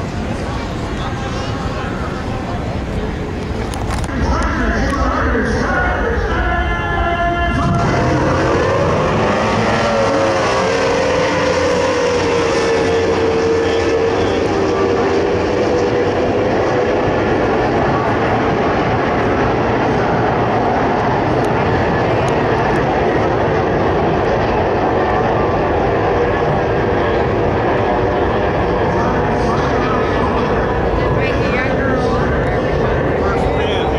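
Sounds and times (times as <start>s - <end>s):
powerboat engines whining: 0.0s - 33.9s
water noise: 7.4s - 33.9s.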